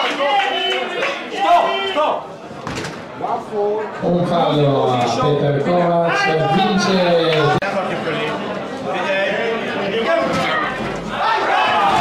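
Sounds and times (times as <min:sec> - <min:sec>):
men shouting: 0:11.1 - 0:12.0.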